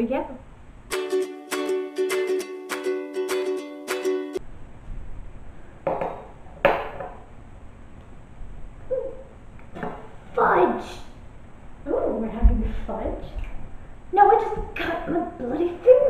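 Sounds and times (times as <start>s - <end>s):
upbeat ukulele music: 0.9s - 4.4s.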